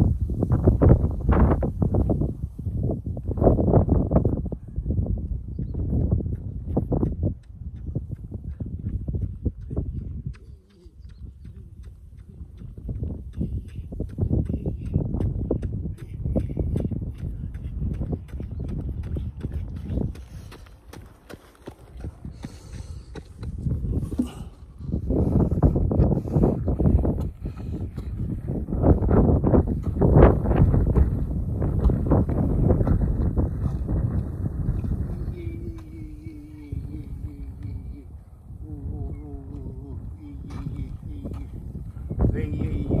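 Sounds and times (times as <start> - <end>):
running footsteps on asphalt: 0.0 - 43.0.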